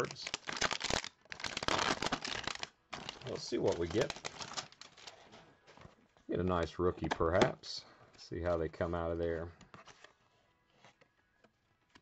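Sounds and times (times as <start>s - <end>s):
plastic wrapping crinkling and tearing: 0.0s - 5.4s.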